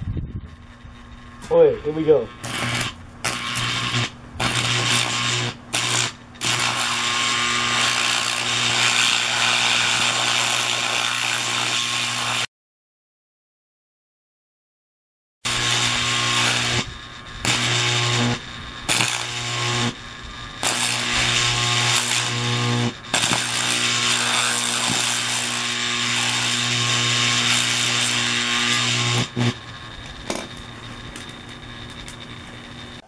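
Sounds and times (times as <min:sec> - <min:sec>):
electrical hum: 0:00.0 - 0:12.4, 0:15.5 - 0:33.0
electric arc buzzing crackle: 0:00.5 - 0:12.5, 0:15.5 - 0:33.0.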